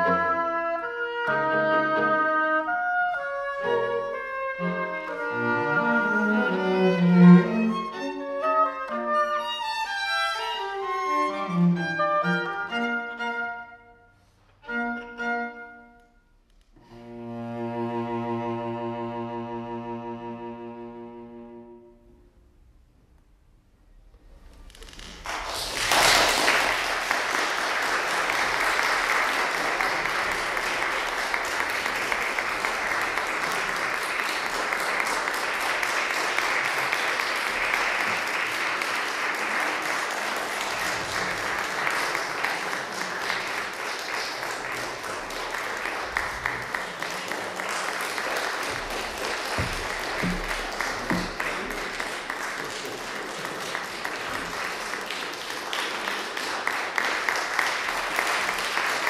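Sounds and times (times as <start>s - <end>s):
oboe and strings chord: 0.0s - 9.4s, 16.8s - 22.3s
audience applause: 25.0s - 59.0s.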